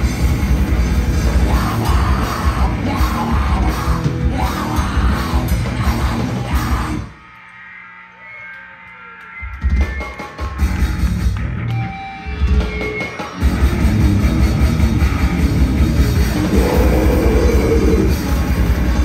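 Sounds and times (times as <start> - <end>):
live metal band playing: 0.0 - 7.1, 9.6 - 19.0.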